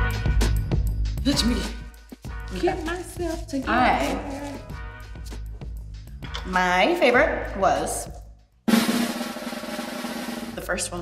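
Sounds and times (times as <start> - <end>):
snare drum roll: 8.7 - 10.7.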